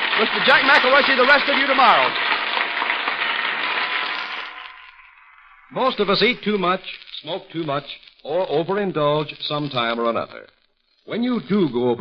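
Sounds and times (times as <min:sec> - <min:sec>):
audience applauding: 0:00.0 - 0:05.0.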